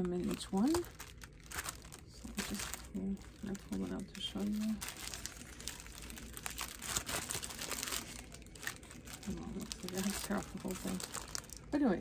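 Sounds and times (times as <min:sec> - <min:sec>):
packaging crinkling: 0:00.0 - 0:12.0.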